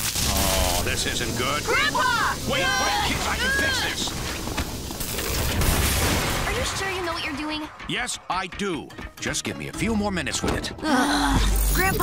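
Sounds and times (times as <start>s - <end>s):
crackling pops: 0.0s - 7.7s.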